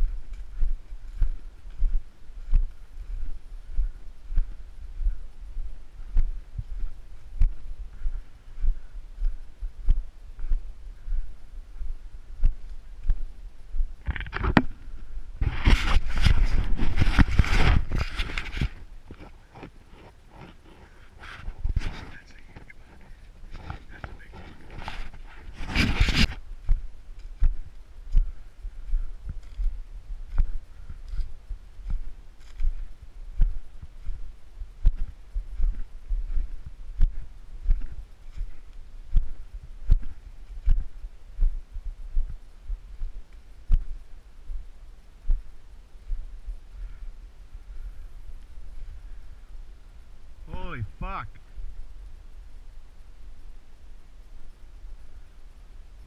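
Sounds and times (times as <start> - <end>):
footsteps in snow: 0.0 - 47.0.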